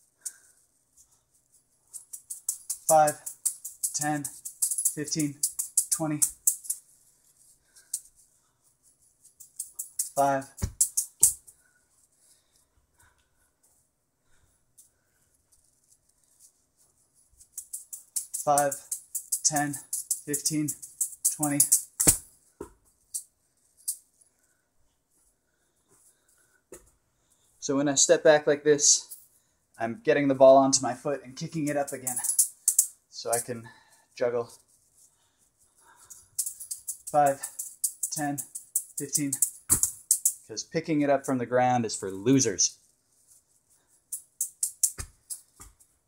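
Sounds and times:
light high rattles: 0.0 - 12.6, 14.8 - 24.6, 31.4 - 40.7, 42.4 - 46.0
juggling balls thudding: 1.9 - 6.8, 9.4 - 11.5, 17.6 - 22.9, 36.4 - 40.4, 44.1 - 45.9.

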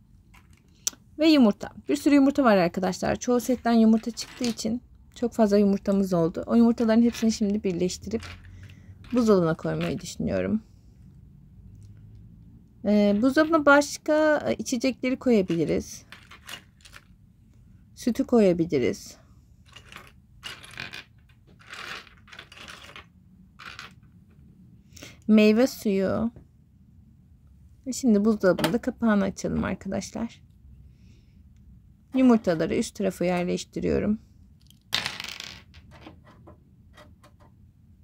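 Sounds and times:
plastic toy eggs clattering: 3.5 - 4.8, 6.8 - 10.2, 15.4 - 17.2, 19.7 - 24.2
small plastic pieces clicking: 19.7 - 24.1.

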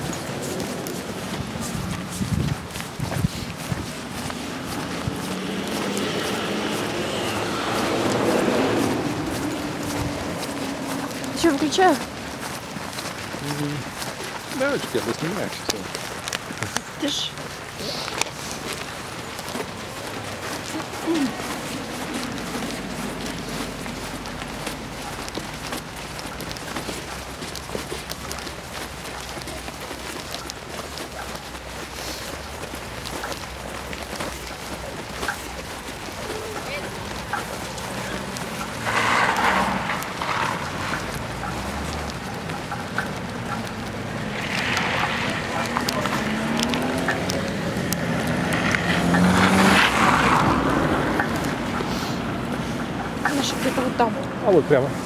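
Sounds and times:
car engine accelerating: 0.0 - 55.0
low traffic hum: 0.0 - 55.0
car driving past: 4.0 - 15.6, 34.1 - 55.0.

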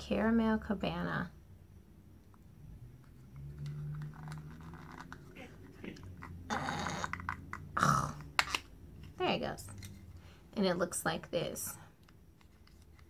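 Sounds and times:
plastic compact rustling and clicking: 12.0 - 13.0.

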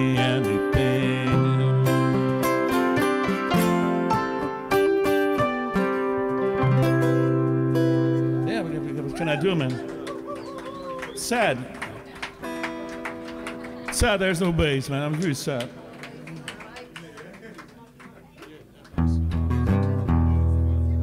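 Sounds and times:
strummed acoustic guitar: 0.0 - 10.4
keyboard chords: 0.0 - 16.1, 19.0 - 21.0.

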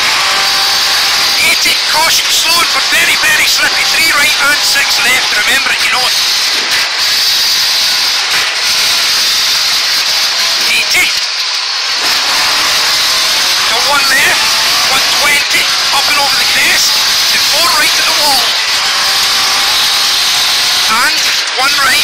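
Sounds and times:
rally car engine accelerating: 0.0 - 22.0.

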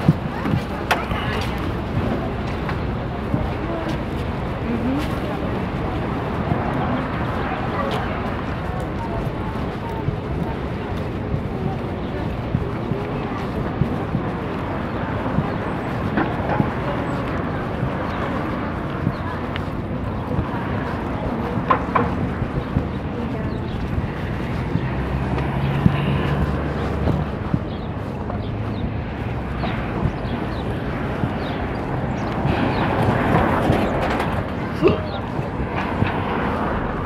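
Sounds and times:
indistinct voices: 0.0 - 37.0
passing traffic: 0.0 - 37.0.

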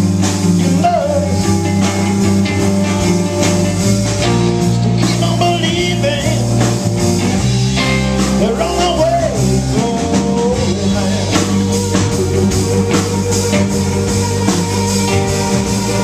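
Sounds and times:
blues rock band playing: 0.0 - 16.0.

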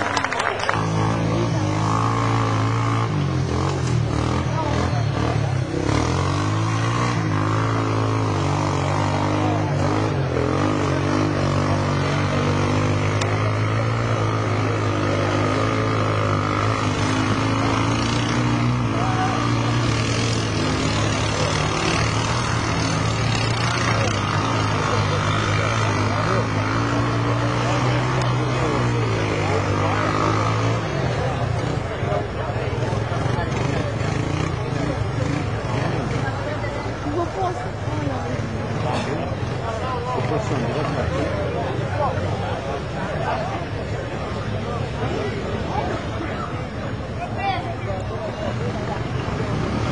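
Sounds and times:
quad engine running hard: 0.0 - 49.9.

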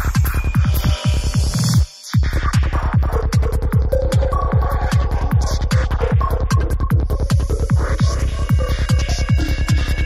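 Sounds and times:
psytrance kick and bassline: 0.0 - 10.0.

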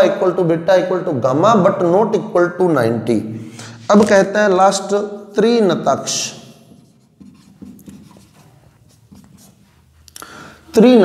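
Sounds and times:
pen scratching on paper: 6.8 - 9.8.

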